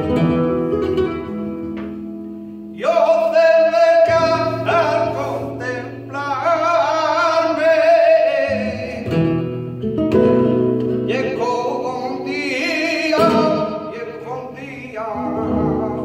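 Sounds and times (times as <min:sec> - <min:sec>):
strummed nylon-string guitar: 0:00.0 - 0:02.8, 0:04.0 - 0:16.0
man singing: 0:02.7 - 0:09.5, 0:11.0 - 0:16.0.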